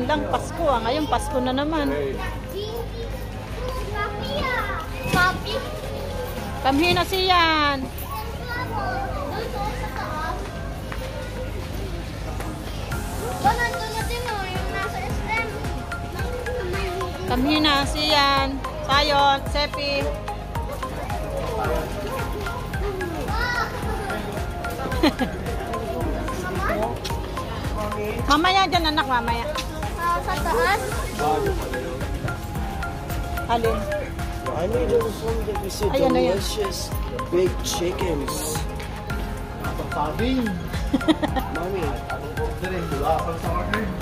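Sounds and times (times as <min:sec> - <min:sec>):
children chattering: 0:00.0 - 0:06.9, 0:07.8 - 0:44.0
background music: 0:00.0 - 0:44.0
young children's voices: 0:02.4 - 0:06.4, 0:08.1 - 0:12.0, 0:13.2 - 0:17.3, 0:22.1 - 0:25.0, 0:29.9 - 0:31.5.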